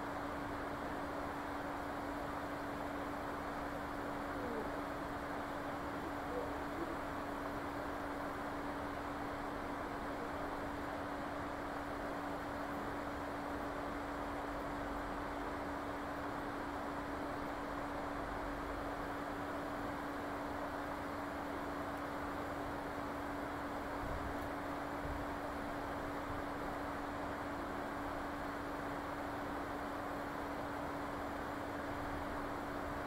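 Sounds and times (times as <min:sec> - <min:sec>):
constant low hum: 0:00.0 - 0:33.0.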